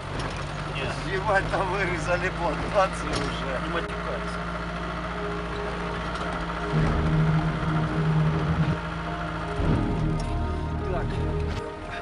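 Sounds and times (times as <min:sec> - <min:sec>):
car engine and road noise: 0:00.0 - 0:12.0
music: 0:02.9 - 0:12.0.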